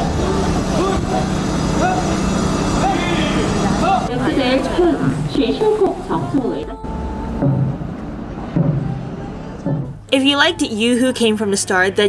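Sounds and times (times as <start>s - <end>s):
city traffic hum: 0.0s - 12.0s
crowd voices: 0.0s - 12.0s.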